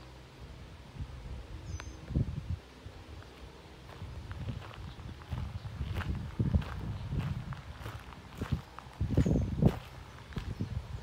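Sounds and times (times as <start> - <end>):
footsteps on path: 3.1 - 11.0.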